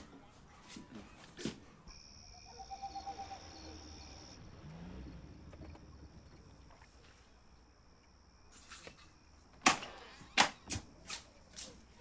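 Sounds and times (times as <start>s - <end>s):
cricket trilling: 1.9s - 9.5s.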